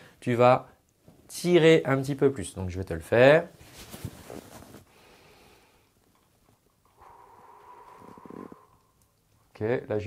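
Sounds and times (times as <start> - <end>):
person breathing: 4.9 - 6.0, 6.9 - 9.2.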